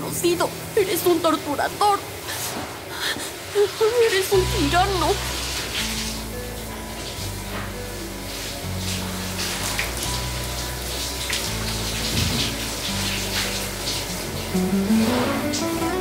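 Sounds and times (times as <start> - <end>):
shower spraying water: 0.0 - 16.0
music with low held chords: 4.3 - 16.0.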